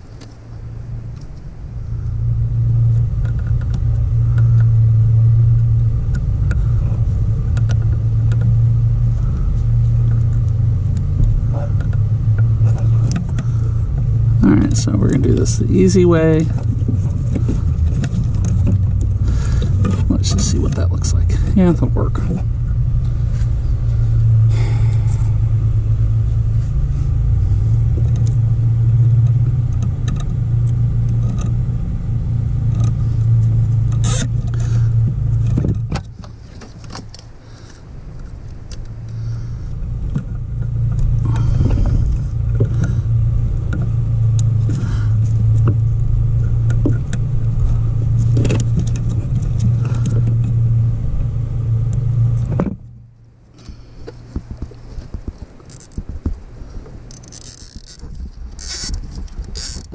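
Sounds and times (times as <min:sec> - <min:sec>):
loud low motor hum: 0:00.0 - 0:59.9.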